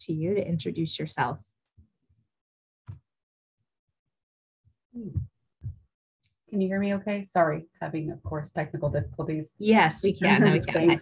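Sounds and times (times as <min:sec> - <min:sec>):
short low vocal sound: 0:05.0 - 0:05.3.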